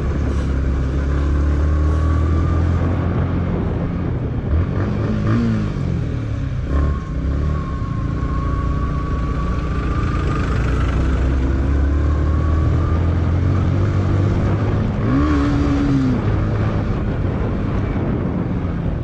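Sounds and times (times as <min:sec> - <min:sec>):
motorcycle engine accelerating: 0:00.0 - 0:19.0
wind noise on microphone: 0:00.0 - 0:19.0.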